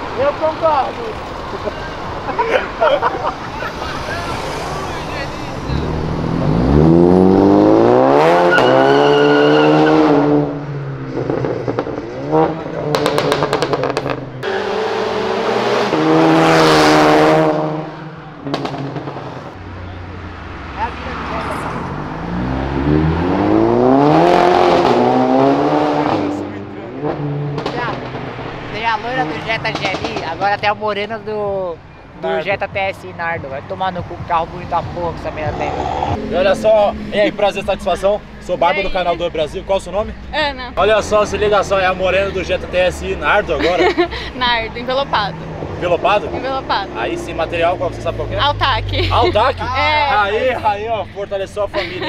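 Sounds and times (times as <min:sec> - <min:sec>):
car engines accelerating hard: 0:00.0 - 0:52.0.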